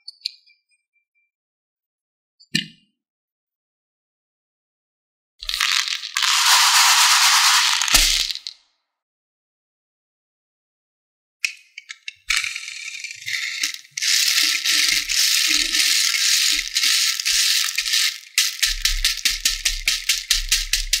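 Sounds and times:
beads rattling in plastic tray: 5.4 - 8.6, 13.3 - 21.0.

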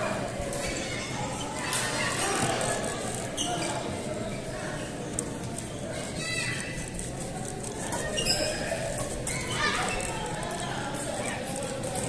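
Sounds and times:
children chattering: 0.0 - 12.0.

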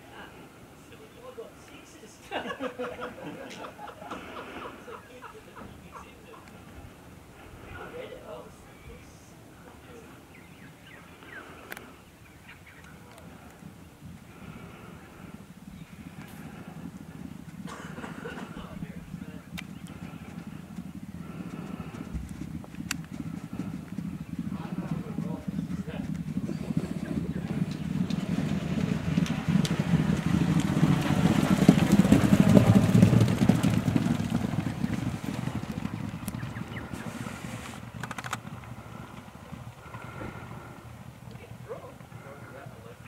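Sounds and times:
horses galloping on turf: 0.0 - 43.0.

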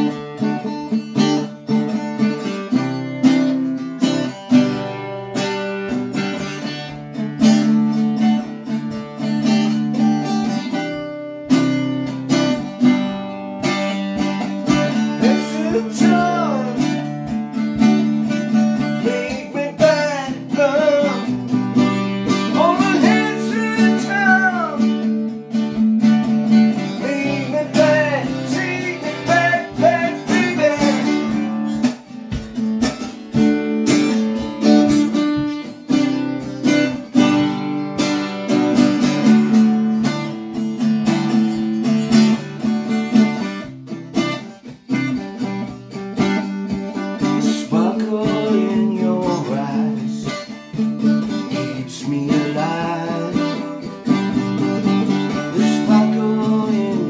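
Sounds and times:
acoustic guitar strumming: 0.0 - 57.0
person singing: 14.8 - 17.3, 18.8 - 21.7, 22.3 - 25.2, 26.7 - 31.9, 47.2 - 50.6, 51.2 - 57.0.

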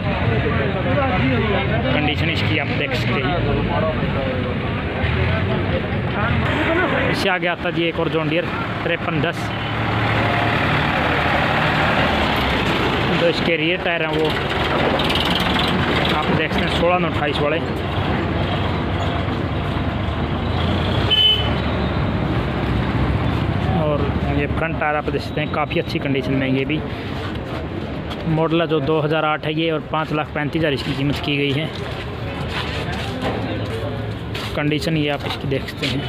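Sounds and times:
people talking: 0.0 - 9.6, 13.1 - 14.4, 16.0 - 17.7, 23.6 - 26.9, 28.2 - 36.0.

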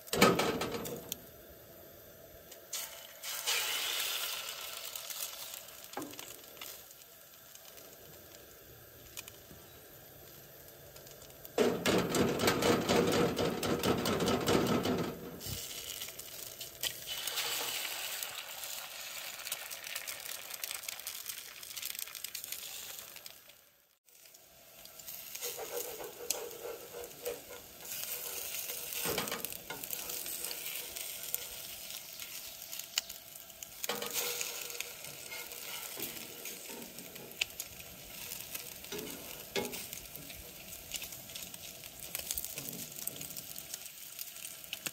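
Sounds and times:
bacon and eggs sizzling in skillet: 0.0 - 44.9
spatula scraping a pan: 25.1 - 32.8, 33.8 - 43.4.

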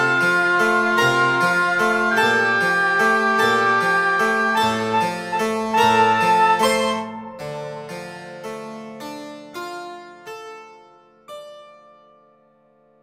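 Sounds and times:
prepared piano chords: 0.0 - 13.0.

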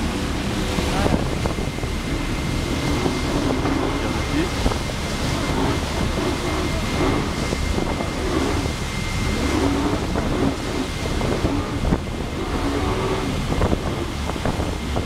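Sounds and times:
low engine rumble: 0.0 - 15.0
rushing water and spray: 0.0 - 15.0
thin steady whine: 0.0 - 15.0
wind buffeting microphone: 0.0 - 15.0.

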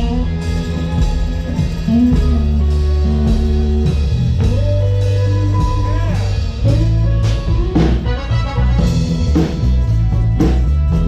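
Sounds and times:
deep bass notes: 0.0 - 11.0
drum kit beat: 0.0 - 11.0
electric guitar: 0.0 - 11.0.

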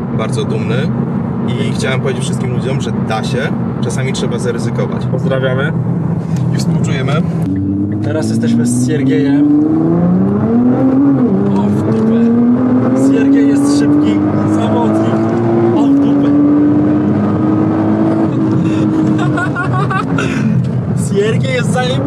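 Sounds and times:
car engine accelerating hard: 0.0 - 22.0.

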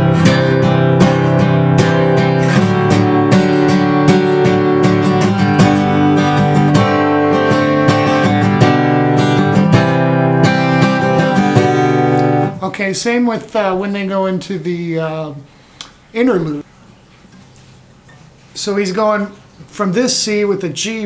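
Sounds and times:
acoustic guitar strumming: 0.0 - 13.9.

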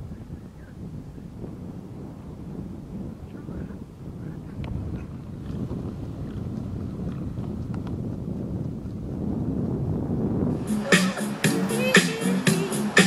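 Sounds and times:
wind buffeting microphone: 0.0 - 13.0
music with a beat: 10.6 - 13.0.

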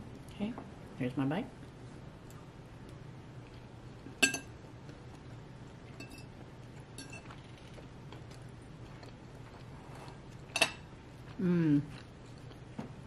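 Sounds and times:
fork clinking on dishware: 4.2 - 4.5, 7.0 - 7.3.

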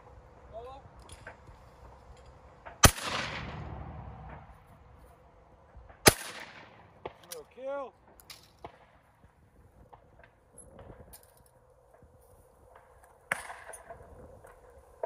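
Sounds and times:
shotgun shots with rolling echo: 2.8 - 4.4, 6.0 - 7.3.

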